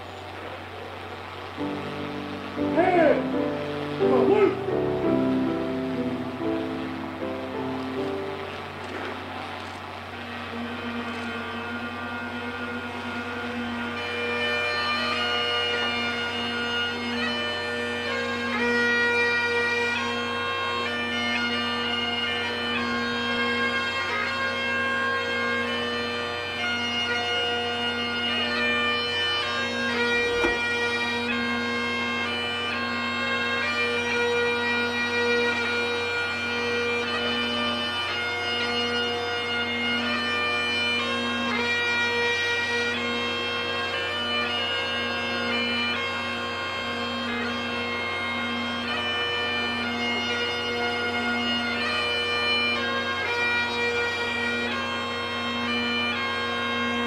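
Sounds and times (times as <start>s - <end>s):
bagpipe drone: 0.0s - 57.0s
bagpipe chanter melody: 1.2s - 57.0s.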